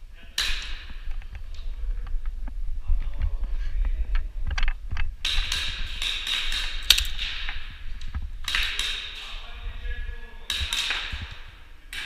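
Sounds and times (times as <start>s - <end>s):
airsoft guns firing: 5.2s - 7.6s.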